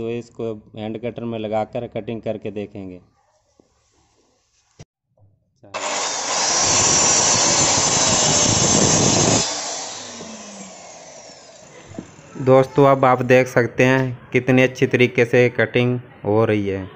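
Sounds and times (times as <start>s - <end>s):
electric saw cutting wood: 5.8s - 13.1s.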